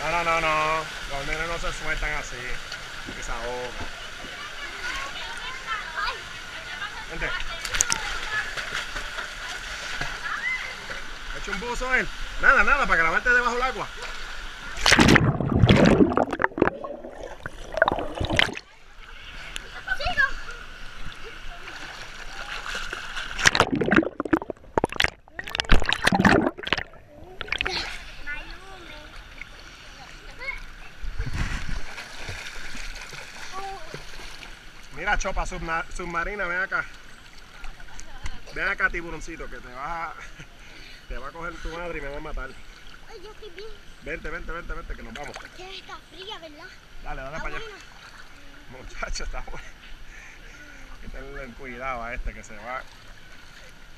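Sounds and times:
pool water sloshing and lapping: 0.0s - 53.9s
sharp water splashes: 14.0s - 18.7s, 21.7s - 28.0s, 31.3s - 34.6s.

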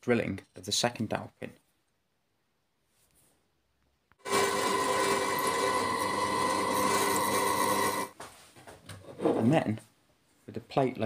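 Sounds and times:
electric drill drilling metal: 4.2s - 8.1s.

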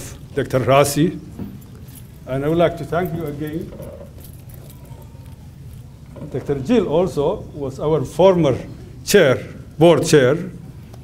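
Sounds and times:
low hum of sound system: 0.0s - 11.0s.

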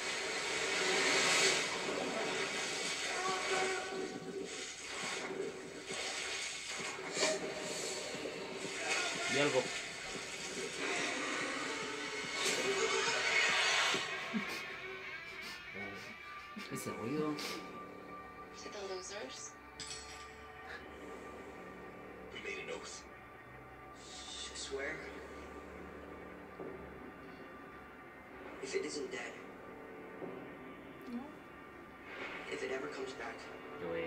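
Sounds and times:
hissing wash: 0.0s - 16.6s
low drone: 0.0s - 34.0s.

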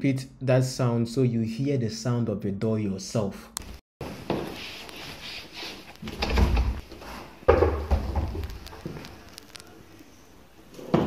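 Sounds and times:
door knocks and thuds: 7.5s - 8.5s.

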